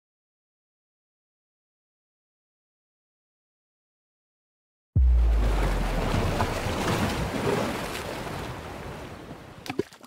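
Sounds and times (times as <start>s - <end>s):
deep boom into rushing noise: 5.0s - 8.2s.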